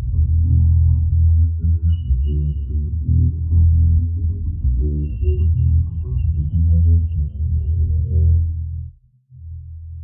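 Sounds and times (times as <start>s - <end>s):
electric bass guitar riff: 0.0s - 10.0s.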